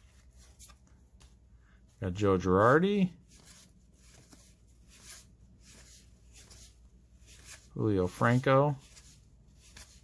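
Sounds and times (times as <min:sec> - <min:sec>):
cards sliding swishes: 0:00.0 - 0:01.8, 0:02.5 - 0:10.0.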